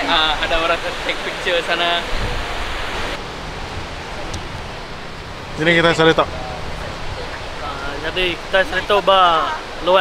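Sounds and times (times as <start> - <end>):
sea surf on beach: 0.0 - 10.0.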